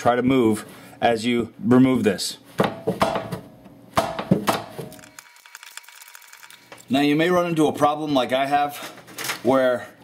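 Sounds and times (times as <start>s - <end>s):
sharp metal knocks: 2.6s - 5.0s.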